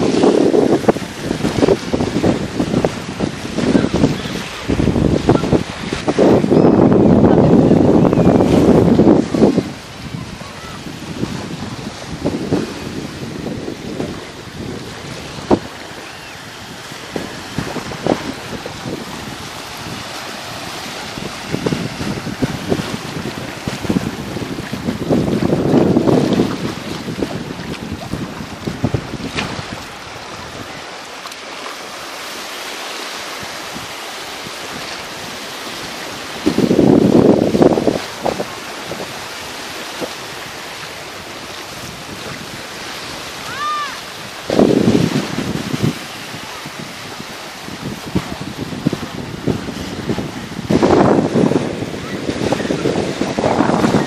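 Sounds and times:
waves washing onto sand: 0.0s - 54.0s
wind buffeting microphone: 0.0s - 54.0s.

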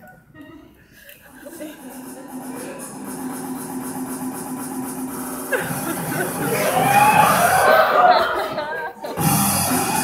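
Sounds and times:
voices in a hall: 0.0s - 10.0s
music: 2.0s - 7.8s, 9.0s - 10.0s.

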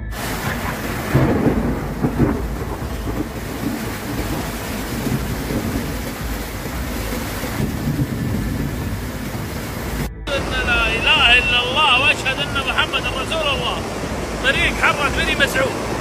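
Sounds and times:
floodwater rushing: 0.0s - 16.0s
heavy rain: 0.0s - 16.0s.

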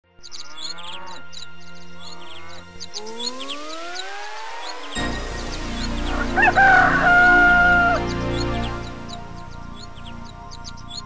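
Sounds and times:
birds chirping: 0.0s - 11.0s
music bed: 0.0s - 11.0s
rising tone sweep: 0.7s - 11.0s.

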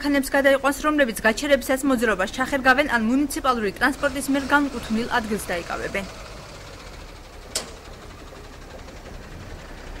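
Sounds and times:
street traffic noise: 0.0s - 10.0s
truck engine driving past: 2.0s - 10.0s.

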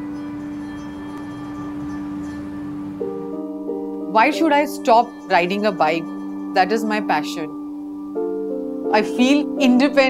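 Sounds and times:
sustained music chord: 0.0s - 10.0s.

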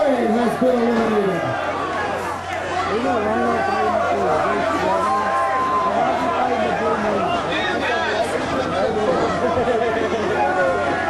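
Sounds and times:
crowd chatter: 0.0s - 11.0s.

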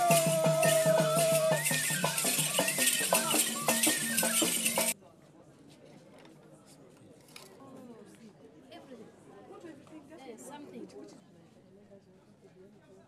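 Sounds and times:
shaken rattles: 0.0s - 5.0s
traditional dance music: 0.0s - 5.0s
voices: 0.0s - 5.0s
faint background chatter: 0.0s - 13.0s.

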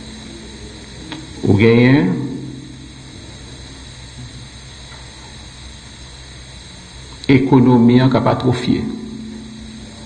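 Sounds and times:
low hum with faint hiss: 0.0s - 10.0s
man speaking: 1.4s - 2.6s.

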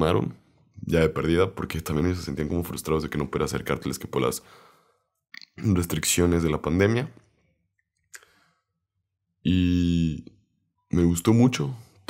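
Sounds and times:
man talking: 0.0s - 4.6s, 5.5s - 7.2s, 9.5s - 10.3s, 10.9s - 12.0s.

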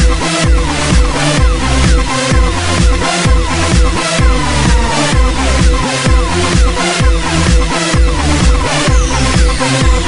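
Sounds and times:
electronic dance music: 0.3s - 10.0s
steady kick drum beat: 0.9s - 8.6s
falling synth sweeps: 4.2s - 6.0s.

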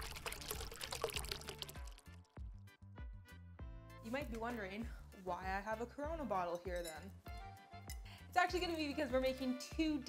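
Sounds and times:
liquid splashing and pouring: 0.0s - 2.4s.

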